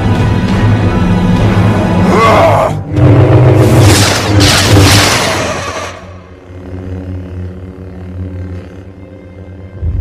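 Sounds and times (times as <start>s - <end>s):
tense film-score music: 0.0s - 10.0s.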